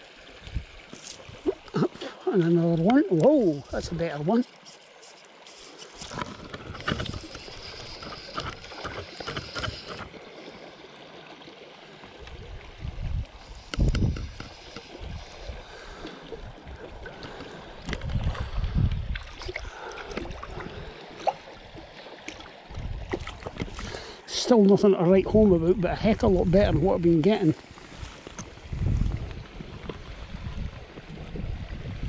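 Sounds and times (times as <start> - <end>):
stream running over stones: 0.0 - 32.0
low water rushes and bumps: 11.8 - 32.0.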